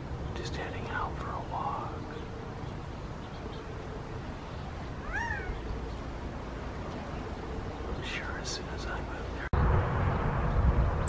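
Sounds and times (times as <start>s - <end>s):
quail call rising and falling: 5.0s - 5.7s.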